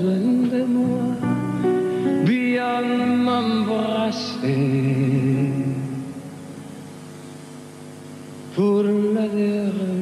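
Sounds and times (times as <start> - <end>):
soft sustained pop ballad chord: 0.0 - 10.0.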